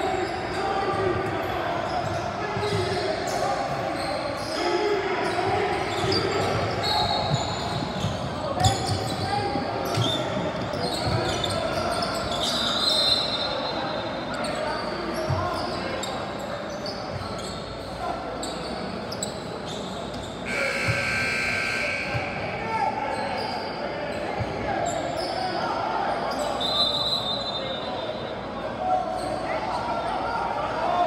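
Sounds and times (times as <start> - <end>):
players shouting and chattering: 0.0 - 31.0.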